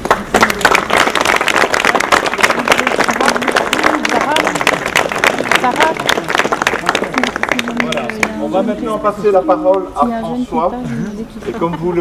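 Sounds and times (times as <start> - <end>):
crowd applauding: 0.0 - 8.5.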